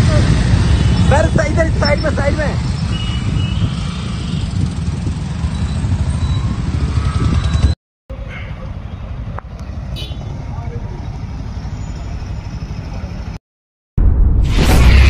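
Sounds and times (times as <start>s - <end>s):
motorcycle engines rumbling: 0.0s - 13.4s.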